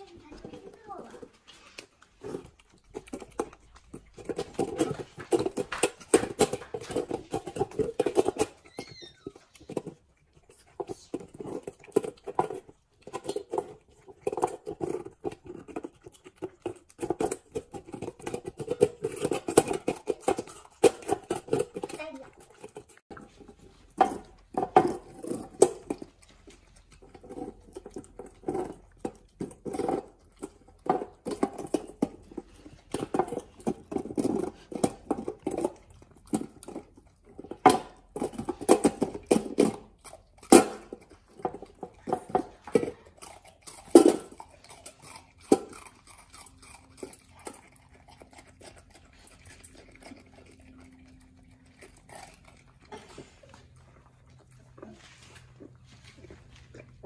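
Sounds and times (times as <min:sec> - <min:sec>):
dog chewing ice: 0:00.0 - 0:57.0.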